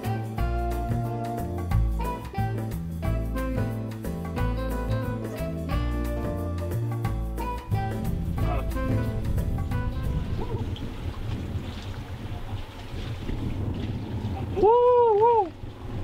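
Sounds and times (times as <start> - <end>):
guitar music: 0.0 - 10.5
wind rumbling on microphone: 7.6 - 16.0.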